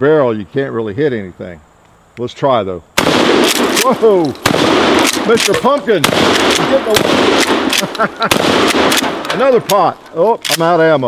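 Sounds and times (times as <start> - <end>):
gunshots with echo: 3.0 - 9.9.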